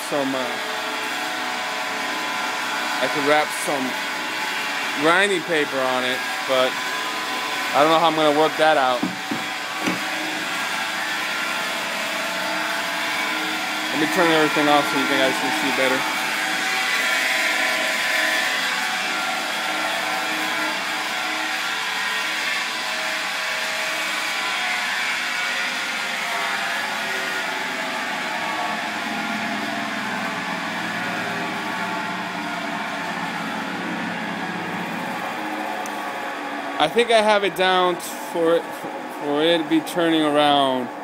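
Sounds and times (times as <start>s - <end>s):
motor whir with hum: 8.9s - 36.8s.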